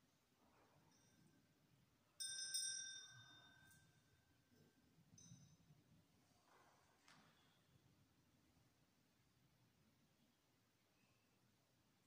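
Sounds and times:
bell ringing: 2.2s - 3.8s.

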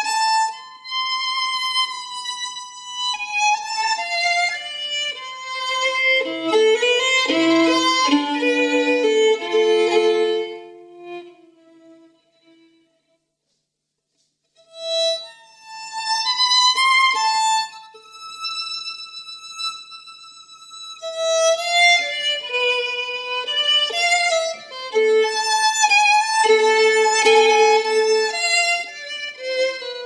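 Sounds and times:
violin playing slow melody: 0.0s - 13.1s, 14.6s - 30.0s.

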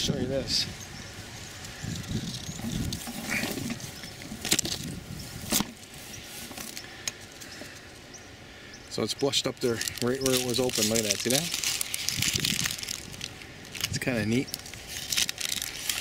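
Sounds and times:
leaves rustling: 0.0s - 16.0s.

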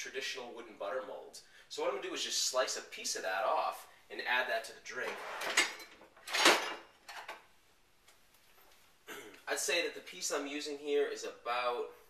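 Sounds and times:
kitchen utensils rattling: 5.1s - 7.4s.

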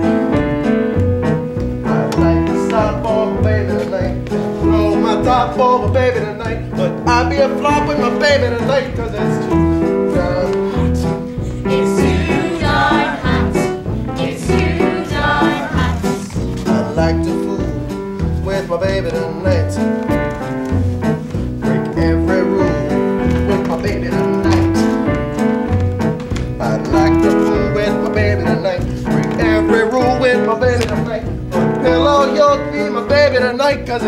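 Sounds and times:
bass: 0.0s - 34.0s
instrumental accompaniment: 0.0s - 34.0s
cast singing show tune: 1.8s - 17.9s.

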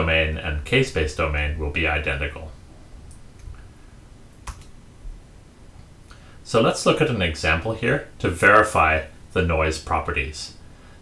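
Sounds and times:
sharp click: 4.3s - 4.8s.

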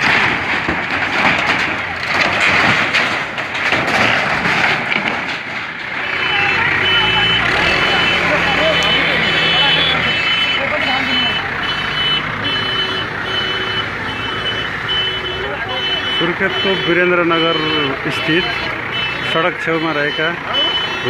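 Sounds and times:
diesel engine running: 0.0s - 21.0s
voices of onlookers: 5.8s - 21.0s
reversing alarm beeping: 6.0s - 21.0s.

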